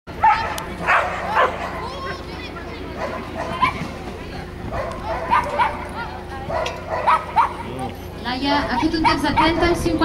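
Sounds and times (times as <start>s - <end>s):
dog barking: 0.2s - 1.8s, 3.0s - 3.8s, 4.7s - 5.9s, 6.5s - 7.7s.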